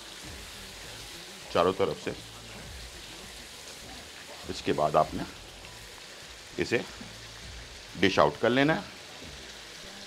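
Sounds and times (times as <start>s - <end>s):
food sizzling in a wok: 0.0s - 10.0s.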